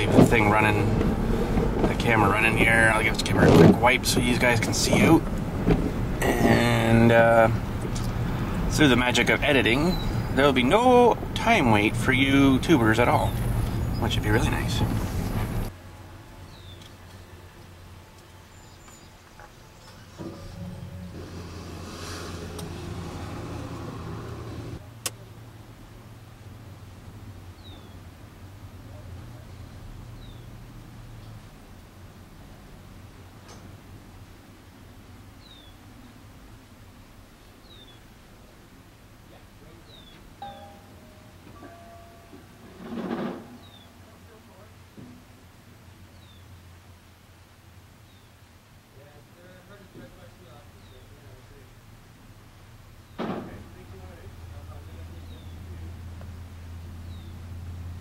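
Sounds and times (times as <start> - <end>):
vehicle engine idling hum: 0.0 - 42.3, 48.9 - 58.0
louder rumble: 20.1 - 24.8
gas cylinders clinking and ringing: 40.4 - 43.8.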